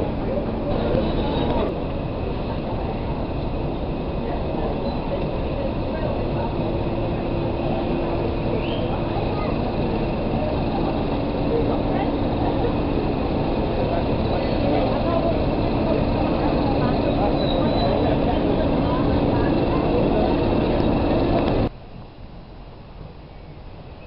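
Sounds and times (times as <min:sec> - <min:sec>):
diesel locomotive engine humming: 0:00.0 - 0:24.0.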